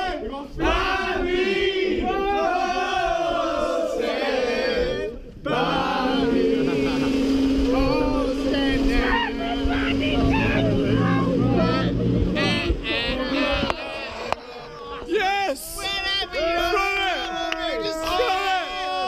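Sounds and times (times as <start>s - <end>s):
men shouting and cheering: 0.0s - 19.0s
boat motor running: 5.5s - 15.1s.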